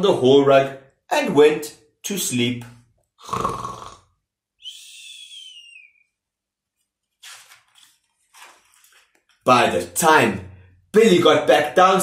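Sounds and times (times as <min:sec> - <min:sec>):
person whistling falling note: 0:04.6 - 0:06.1.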